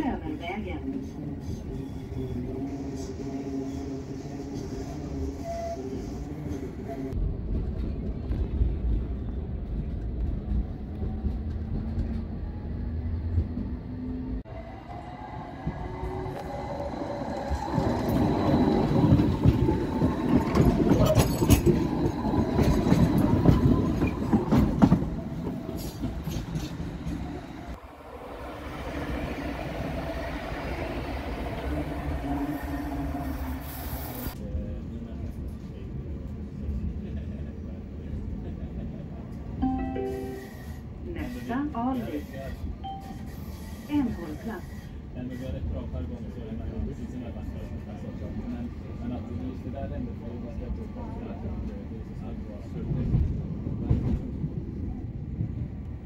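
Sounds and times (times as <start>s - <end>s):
tram rumble: 0.0s - 56.0s
tram wheels on rails: 0.0s - 56.0s.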